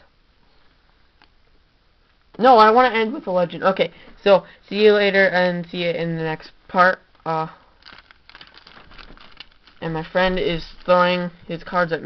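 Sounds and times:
person speaking: 2.4s - 12.0s
small crackles: 7.0s - 12.0s
crinkling and rustling: 7.1s - 12.0s.

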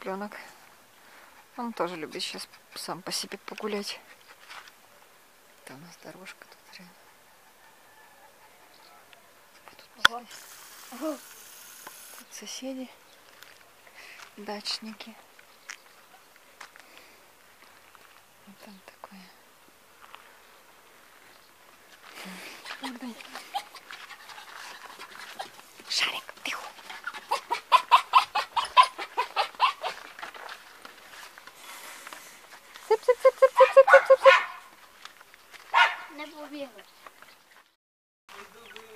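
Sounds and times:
faint outdoor hiss: 0.0s - 38.9s
dog panting: 6.3s - 7.3s, 22.2s - 30.6s
footsteps on gravel: 13.2s - 18.3s, 20.0s - 27.4s, 28.8s - 38.9s.

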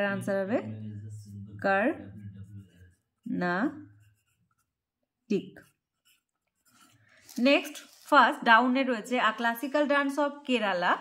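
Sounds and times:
pen scratching on paper: 1.6s - 8.2s.

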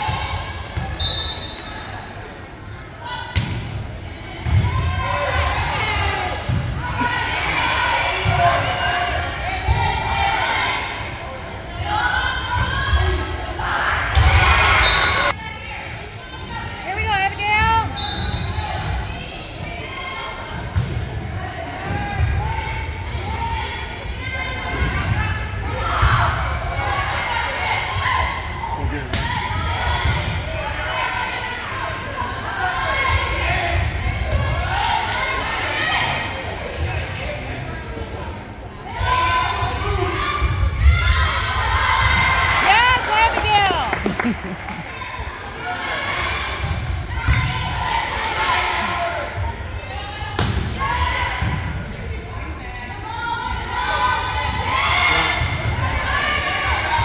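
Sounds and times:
spectators voices and cheers: 38.8s - 49.4s.

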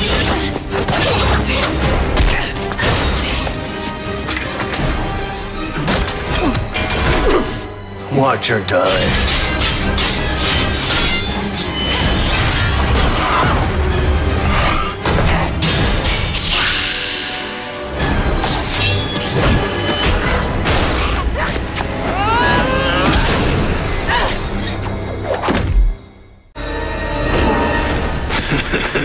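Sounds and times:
action trailer music: 0.0s - 29.0s
dramatic film score: 0.0s - 29.0s.

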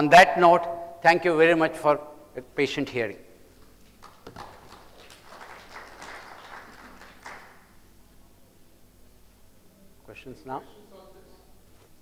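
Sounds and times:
audience applauding: 3.8s - 7.8s.

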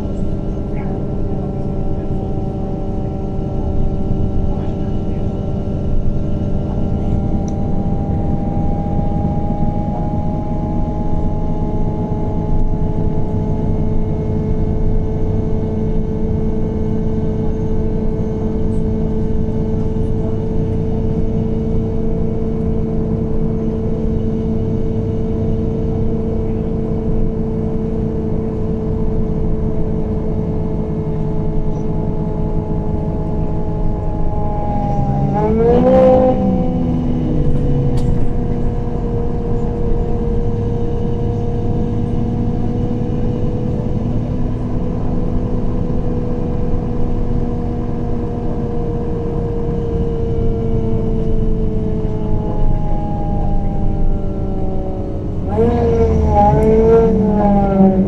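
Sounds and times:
bus engine droning: 0.0s - 58.0s
road rumble: 0.0s - 58.0s.

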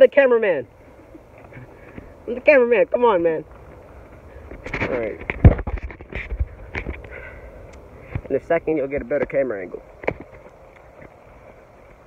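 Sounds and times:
faint outdoor background: 0.0s - 12.0s.

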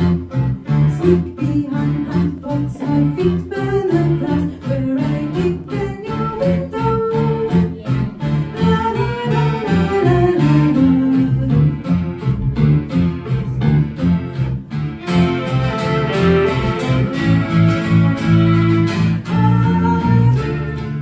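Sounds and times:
electric bass guitar: 0.0s - 21.0s
fiddle melody: 0.0s - 21.0s
strummed acoustic guitar: 0.0s - 21.0s.

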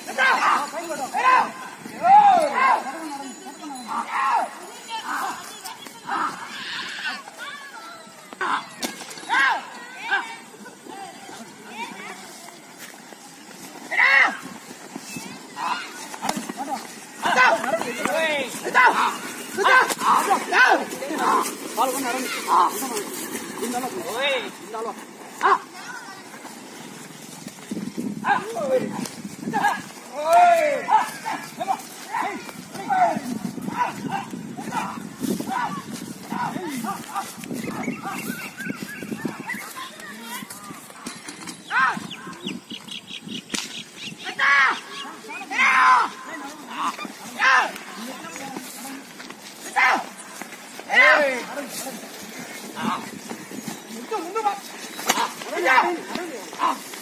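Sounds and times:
men shouting at bullocks: 0.0s - 7.5s, 8.4s - 10.4s, 13.8s - 14.6s, 15.5s - 25.7s, 28.2s - 38.5s, 44.2s - 53.2s, 53.9s - 57.0s
faint voices: 0.0s - 43.1s, 44.1s - 57.0s
man shouting: 0.1s - 3.0s, 17.2s - 21.4s.

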